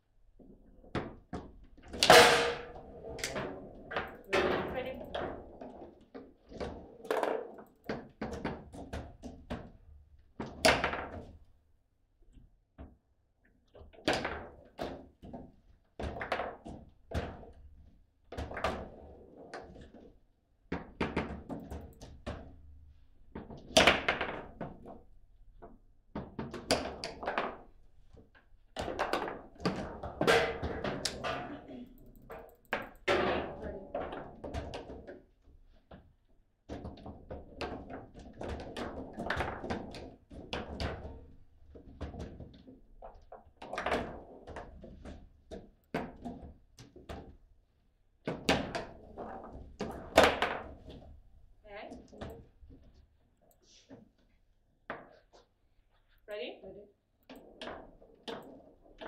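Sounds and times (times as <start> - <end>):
foosball rods banging and clacking: 1.0 - 5.4, 25.6 - 35.2, 48.2 - 51.2
foosball ball struck by figures: 1.9 - 3.5, 28.8 - 31.6.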